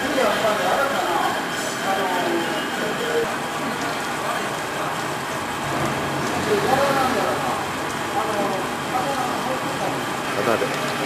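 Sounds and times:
processing machinery running: 0.0s - 11.0s.

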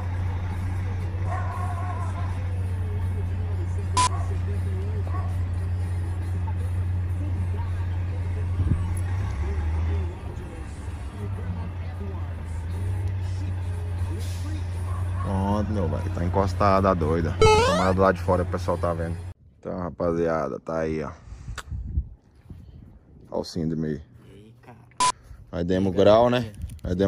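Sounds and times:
truck diesel engine drone: 0.0s - 14.9s.

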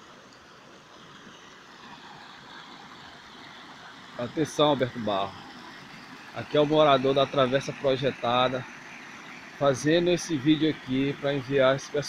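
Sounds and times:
runoff water rushing: 0.0s - 12.0s.

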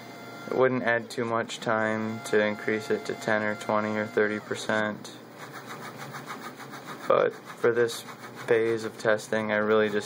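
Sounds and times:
stepper motors buzzing: 1.9s - 10.0s.

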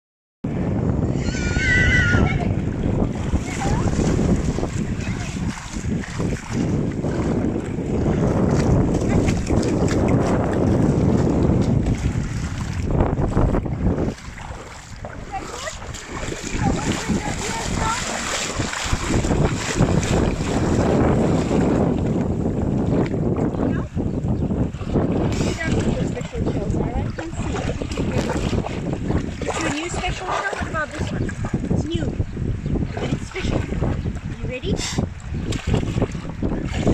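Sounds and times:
wind on microphone: 0.4s - 36.9s
splashing shallow water: 1.2s - 36.9s.

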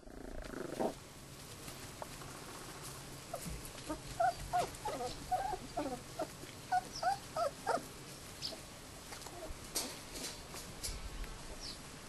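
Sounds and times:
puppies whining: 3.3s - 8.6s.

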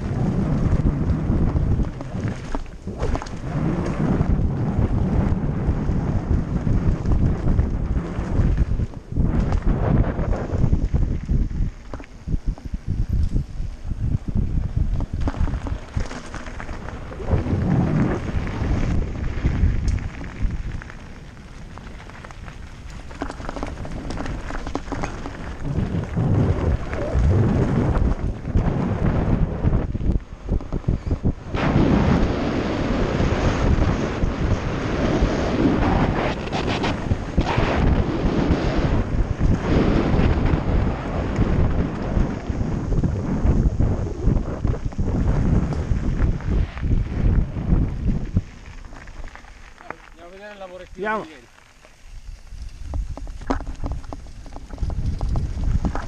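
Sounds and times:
bike tyres rumbling on gravel: 0.0s - 56.0s
wind buffeting microphone: 0.0s - 56.0s.

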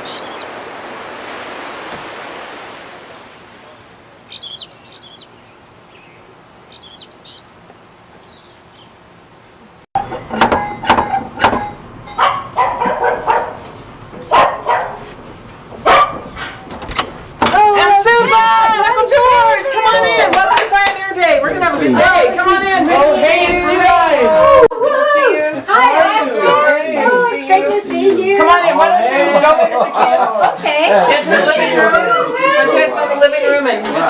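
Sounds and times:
faint chirps: 3.6s - 7.5s
sharp knocks: 10.0s - 17.6s
dog barking: 12.2s - 15.1s, 15.8s - 16.6s.

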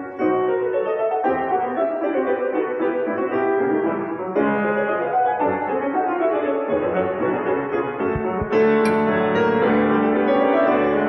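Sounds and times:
classical piano duet: 0.0s - 11.0s.

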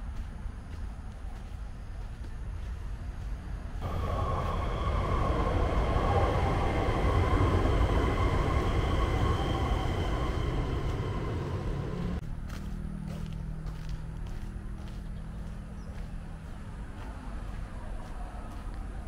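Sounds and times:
train multi-tone whine: 0.0s - 12.2s
train wheels rumbling on rail: 0.0s - 12.2s.

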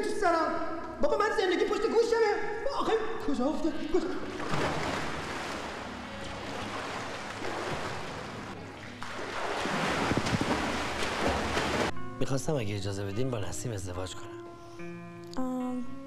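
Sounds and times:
pool water splashing: 4.0s - 11.9s.

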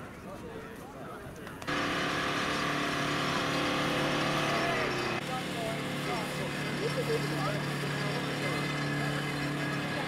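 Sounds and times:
vehicle engine running: 1.7s - 10.0s.

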